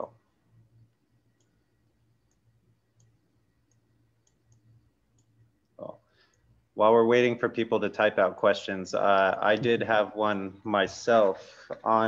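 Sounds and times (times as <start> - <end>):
faint irregular clicks: 0.0 - 6.6
low steady hum: 0.0 - 12.0.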